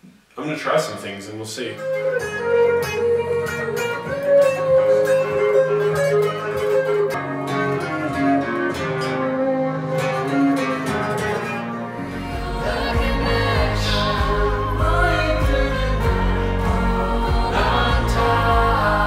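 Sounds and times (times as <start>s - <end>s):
electric guitar melody: 1.8s - 19.0s.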